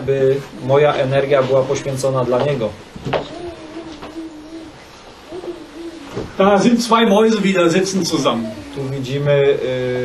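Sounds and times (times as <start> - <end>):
person making hesitation sound: 3.3 - 6.4.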